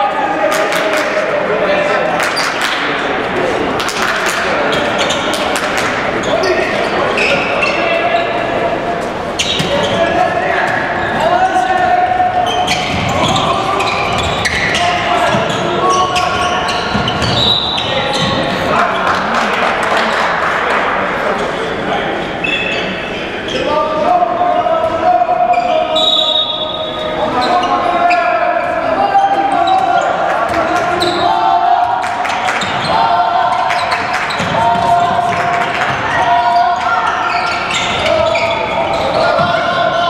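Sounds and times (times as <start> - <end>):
voices calling out: 0.0 - 40.0
ball bouncing on court: 16.7 - 17.5, 33.8 - 36.0.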